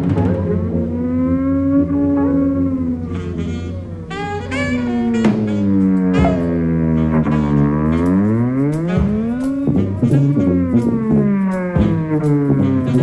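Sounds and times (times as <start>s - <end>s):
alto saxophone: 0.7s - 13.0s
jazz band playing: 1.8s - 13.0s
drum and cymbal strokes: 4.1s - 13.0s.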